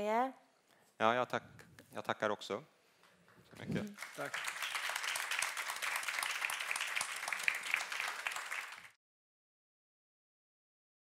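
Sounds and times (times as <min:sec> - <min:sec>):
audience applauding: 0:03.6 - 0:09.0.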